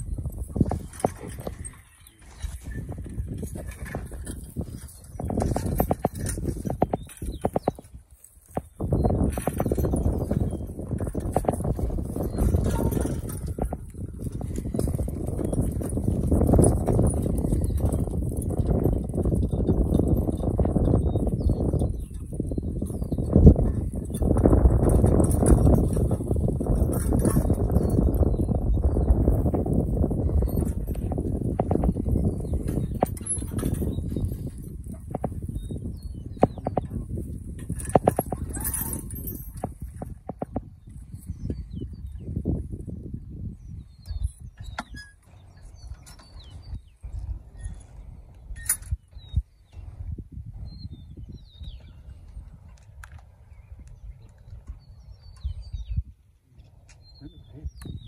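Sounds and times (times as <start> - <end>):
harness and plow clinking: 0.0 - 42.2, 43.8 - 49.9.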